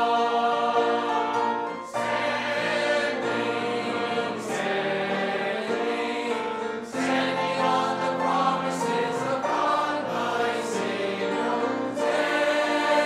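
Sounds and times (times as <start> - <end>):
congregation singing a hymn: 0.0 - 13.0.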